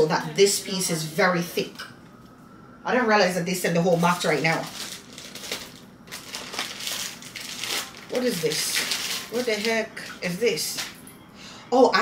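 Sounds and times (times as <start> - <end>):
plastic bag crinkling: 3.9 - 11.0.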